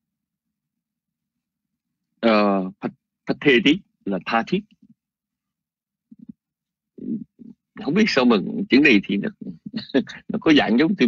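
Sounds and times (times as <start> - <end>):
man speaking: 2.2 - 4.8, 7.0 - 11.0.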